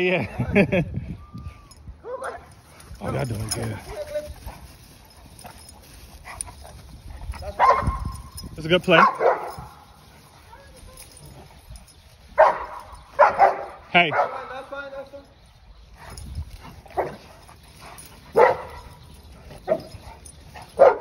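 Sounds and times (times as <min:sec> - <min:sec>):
dogs barking: 0:02.0 - 0:15.1, 0:15.9 - 0:21.0.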